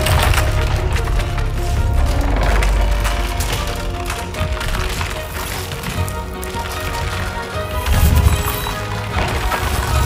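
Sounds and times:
deep rumble: 0.0 - 6.2
faint tense music: 0.0 - 10.0
walls cracking and splintering: 0.0 - 10.0.

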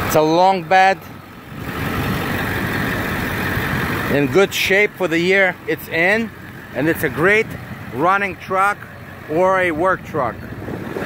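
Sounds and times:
diesel pickup engine idling: 0.0 - 11.0.

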